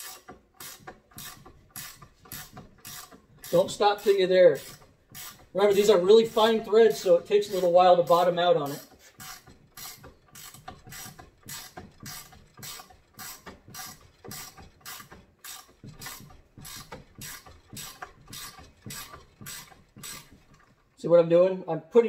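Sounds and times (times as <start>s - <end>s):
ratcheting wrench clicking: 0.0s - 20.9s.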